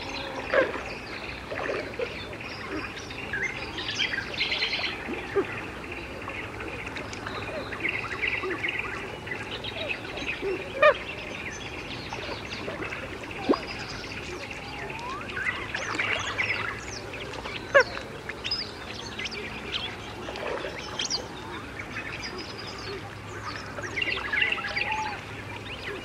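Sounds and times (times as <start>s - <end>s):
birds chirping: 0.0s - 26.0s
low steady hum: 0.0s - 26.0s.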